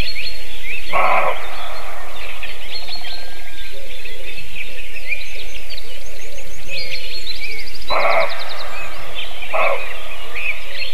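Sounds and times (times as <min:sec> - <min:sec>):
birds chirping and trilling: 0:00.0 - 0:10.9.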